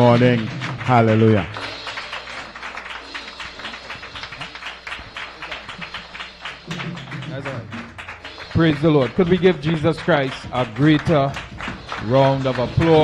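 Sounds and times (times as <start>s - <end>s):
congregation clapping: 0.0s - 13.0s.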